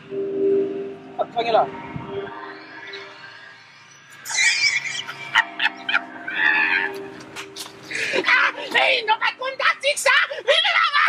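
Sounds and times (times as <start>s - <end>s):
background music: 0.0s - 9.6s
man laughing: 4.6s - 6.8s.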